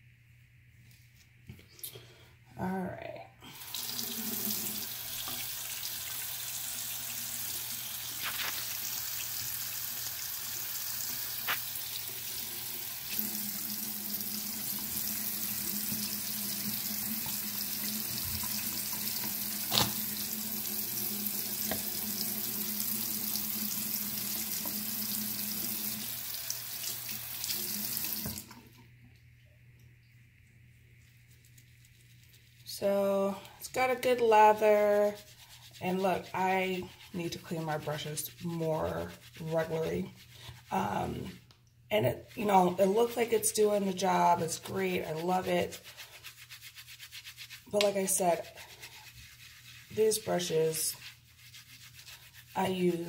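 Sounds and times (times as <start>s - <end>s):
faucet running into sink: 3.5s - 28.8s.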